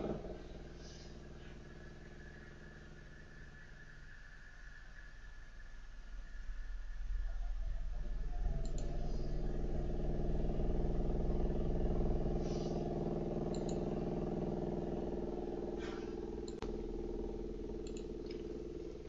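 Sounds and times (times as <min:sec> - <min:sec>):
low mechanical hum: 0:00.0 - 0:19.0
faint clicks: 0:08.6 - 0:09.1, 0:13.5 - 0:13.9, 0:16.4 - 0:16.7, 0:17.8 - 0:18.5.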